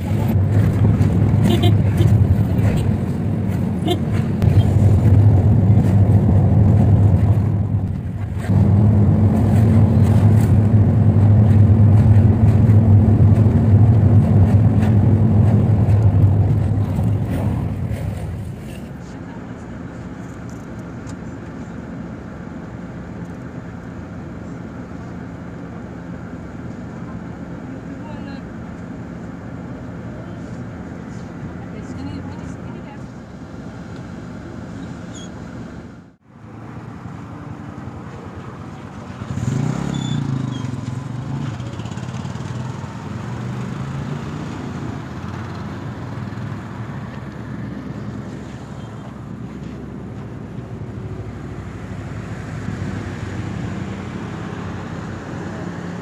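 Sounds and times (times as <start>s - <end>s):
bus cabin hum: 0.0s - 56.0s
vehicle engine and road noise: 0.0s - 56.0s.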